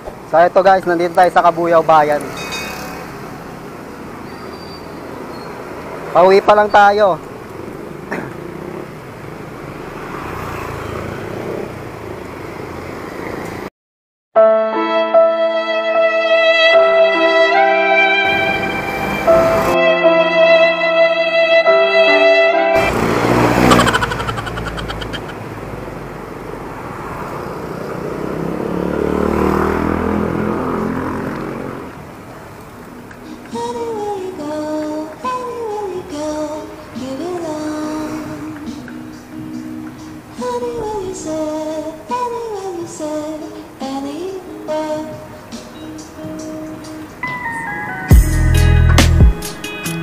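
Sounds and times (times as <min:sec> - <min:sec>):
bike road rumble: 0:00.0 - 0:13.7, 0:18.2 - 0:19.8, 0:22.8 - 0:48.0
motor traffic: 0:00.0 - 0:13.7, 0:16.9 - 0:20.8, 0:21.6 - 0:50.0
wind: 0:00.0 - 0:13.7, 0:16.1 - 0:50.0
passing vehicle engine: 0:00.6 - 0:13.7, 0:18.2 - 0:19.8, 0:22.7 - 0:43.9
motorcycle engine: 0:02.2 - 0:04.0, 0:07.3 - 0:13.2, 0:22.8 - 0:32.1.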